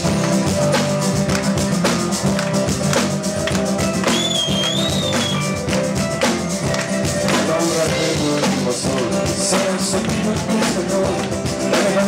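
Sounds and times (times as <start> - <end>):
drum kit beat: 0.0 - 12.0.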